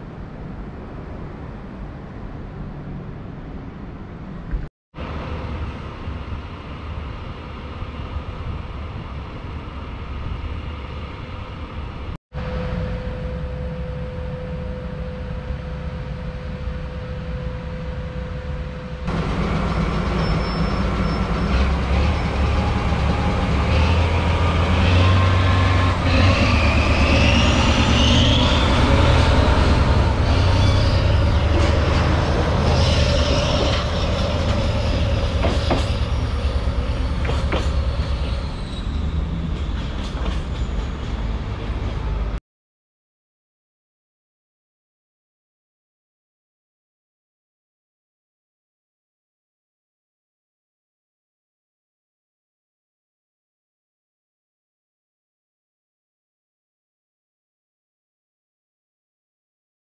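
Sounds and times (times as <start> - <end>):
diesel locomotive engine rumble: 0.0 - 42.4
electric locomotive passing: 0.0 - 42.4
high wheel squeal: 18.8 - 41.6.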